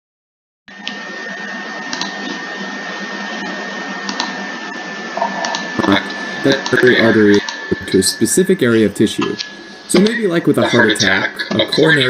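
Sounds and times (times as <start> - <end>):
high constant whine: 0.7 - 12.0
steady background hiss: 1.3 - 12.0.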